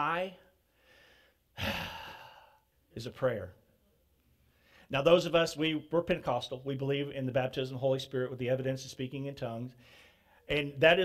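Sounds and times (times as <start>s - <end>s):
man sighing: 1.5s - 2.7s.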